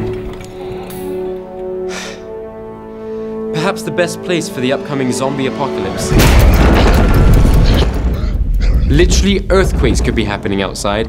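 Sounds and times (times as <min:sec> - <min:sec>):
music: 0:00.0 - 0:11.0
loud boom with deep rumble: 0:06.1 - 0:11.0.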